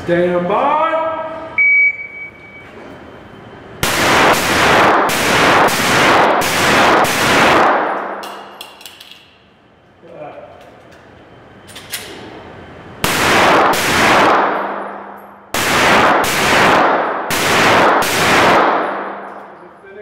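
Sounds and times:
echoing handgun shots: 0:03.8 - 0:08.5, 0:13.0 - 0:19.4.

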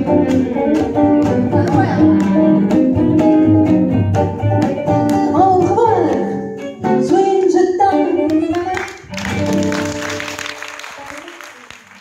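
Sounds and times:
gypsy jazz band playing: 0:00.0 - 0:11.6
woman singing: 0:06.9 - 0:08.6
audience applause: 0:08.7 - 0:12.0.

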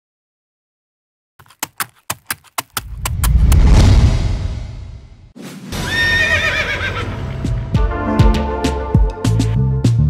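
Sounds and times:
horse whinny: 0:05.8 - 0:07.1.

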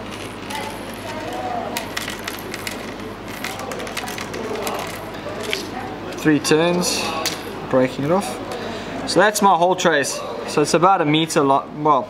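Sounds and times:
wire being twisted by hand: 0:00.0 - 0:06.3
murmur of faint voices: 0:00.0 - 0:12.0.

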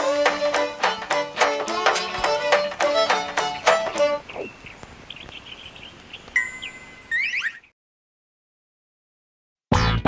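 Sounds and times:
high cartoon chirps: 0:04.0 - 0:04.7, 0:06.3 - 0:07.7
bright chime ding: 0:06.4 - 0:07.2.

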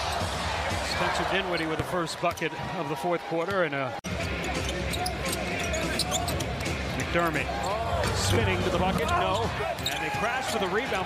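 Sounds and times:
crowd noise: 0:00.0 - 0:11.0.

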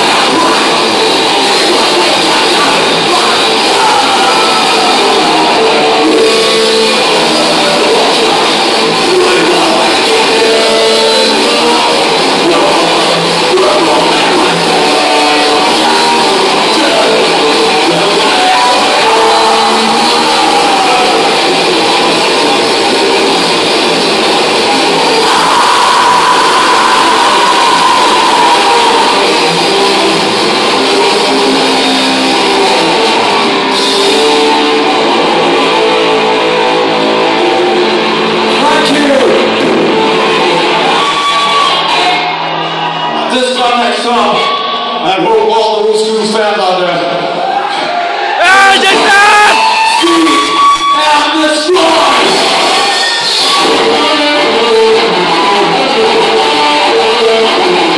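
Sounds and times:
shouted vocals: 0:00.0 - 0:45.9, 0:46.6 - 0:57.9
metal band playing live: 0:00.0 - 0:57.9.

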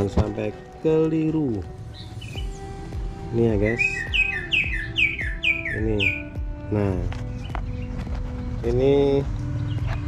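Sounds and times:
background music with steady beat: 0:00.0 - 0:10.0
bird chirping: 0:01.7 - 0:10.0.

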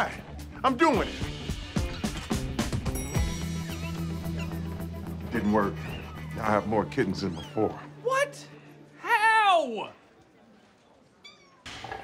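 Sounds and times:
background noise: 0:06.6 - 0:12.0.

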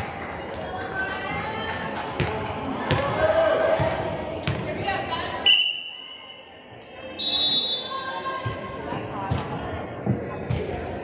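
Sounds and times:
voices echoing: 0:00.0 - 0:11.0
referee's whistle blast: 0:05.5 - 0:06.2.

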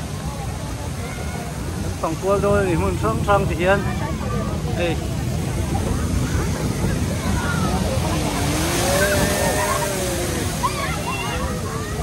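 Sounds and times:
ride car rumbling: 0:00.0 - 0:12.0
wind buffeting microphone: 0:00.0 - 0:12.0
distant voices calling out: 0:06.0 - 0:12.0.

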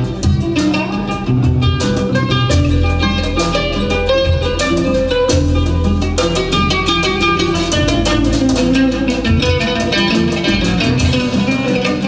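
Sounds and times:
drum strokes: 0:00.0 - 0:12.0
folk jazz band playing: 0:00.0 - 0:12.0.

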